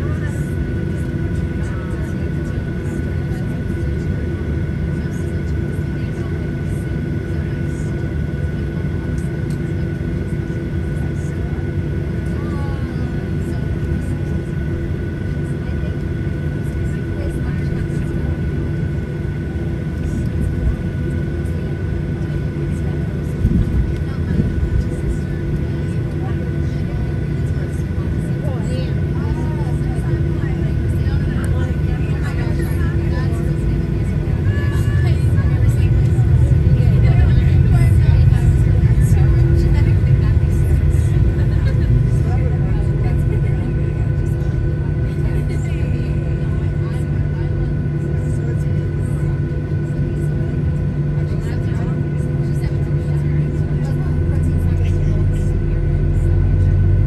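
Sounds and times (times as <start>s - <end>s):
jet engines deep rumble: 0.0s - 57.0s.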